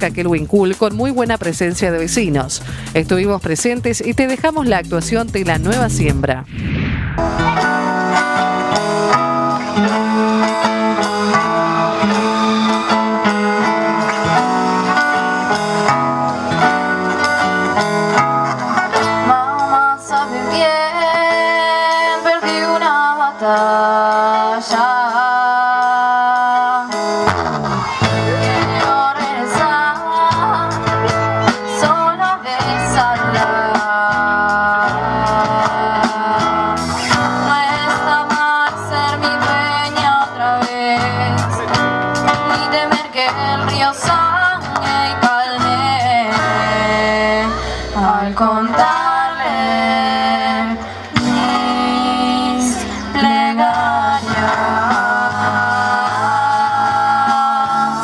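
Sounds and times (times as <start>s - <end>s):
live rock band playing: 0.0s - 58.0s
person singing: 7.4s - 15.6s, 18.9s - 27.0s, 27.9s - 58.0s.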